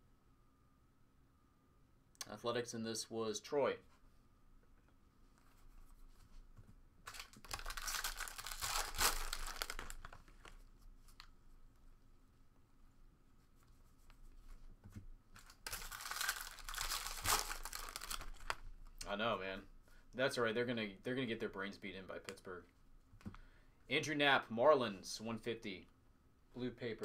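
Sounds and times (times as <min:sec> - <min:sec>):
faint handling of cards: 0:03.8 - 0:12.0, 0:13.3 - 0:20.0, 0:22.2 - 0:23.5
foil wrappers tearing and crinkling: 0:07.1 - 0:10.2, 0:15.4 - 0:18.6.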